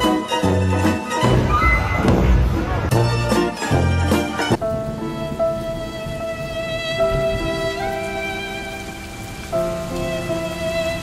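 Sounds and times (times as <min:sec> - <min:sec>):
slow sad music: 0:00.0 - 0:11.0
steady rain: 0:00.0 - 0:11.0.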